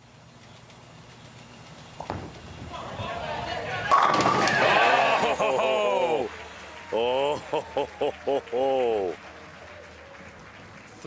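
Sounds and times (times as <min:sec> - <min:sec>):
bowling ball rolling: 0:01.4 - 0:06.6
bowling pins crashing: 0:02.0 - 0:05.5
crowd shouting and cheering: 0:02.6 - 0:11.0.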